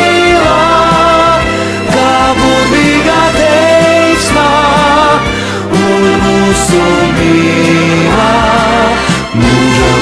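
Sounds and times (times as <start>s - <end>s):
pop song held chords: 0.0s - 10.0s.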